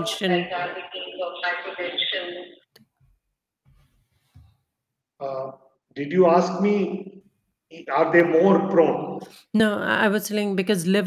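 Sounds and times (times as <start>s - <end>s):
woman speaking: 0.0s - 2.6s, 9.4s - 11.0s.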